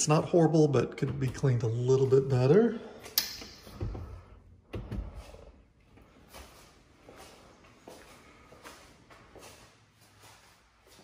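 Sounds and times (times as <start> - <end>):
footsteps on tile floor: 3.6 - 11.0.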